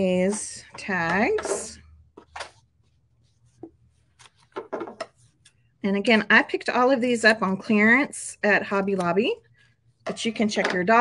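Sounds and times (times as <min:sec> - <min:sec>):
fabric rustling and scraping: 0:02.1 - 0:06.5.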